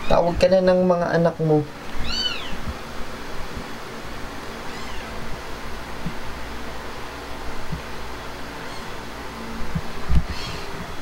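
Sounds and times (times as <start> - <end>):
cat meowing: 2.0 - 2.6, 4.6 - 5.1.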